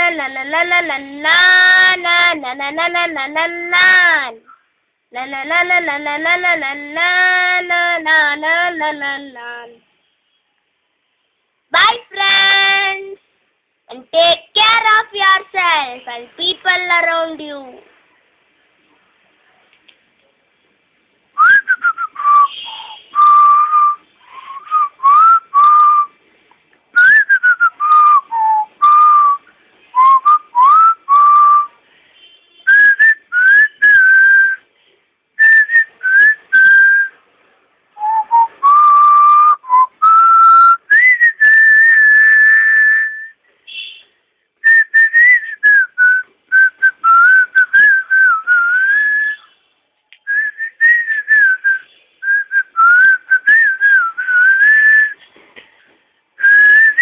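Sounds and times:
person whistling a melody: 21.4 - 26.1, 27.0 - 31.8, 32.7 - 34.6, 35.4 - 37.2, 38.0 - 43.4, 44.6 - 49.5, 50.2 - 55.2, 56.4 - 57.0.

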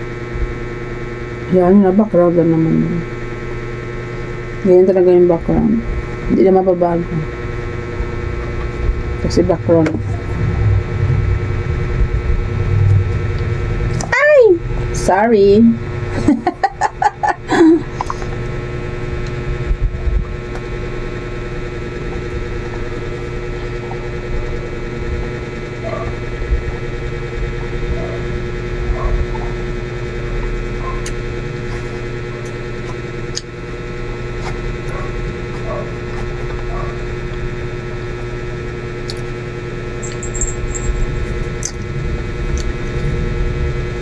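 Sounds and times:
steady electrical hum: 0.0 - 44.0
low rumble: 5.4 - 35.6, 39.5 - 44.0
eating sounds: 41.5 - 43.2.

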